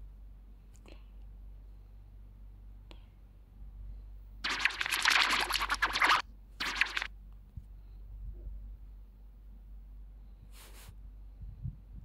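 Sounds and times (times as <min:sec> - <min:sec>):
harsh crackly distorted audio: 0:04.4 - 0:07.1.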